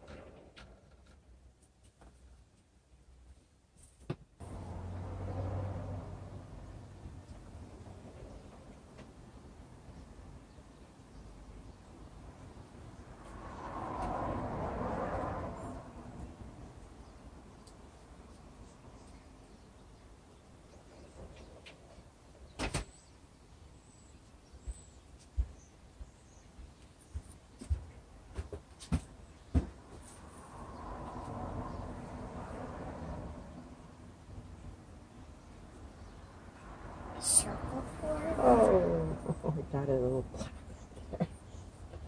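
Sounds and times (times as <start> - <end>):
soft rushing noise: 29.8 - 34.7.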